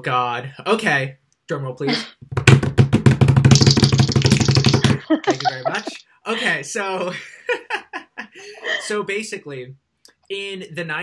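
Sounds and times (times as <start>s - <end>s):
person laughing: 4.8s - 9.0s.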